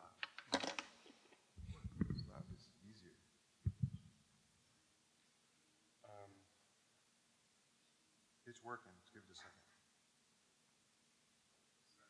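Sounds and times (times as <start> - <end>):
low thuds: 1.6 - 2.7, 3.6 - 4.1.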